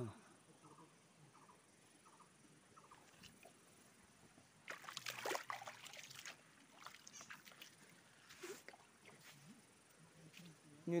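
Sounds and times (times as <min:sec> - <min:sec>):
hand splashing in water: 0:04.7 - 0:07.8.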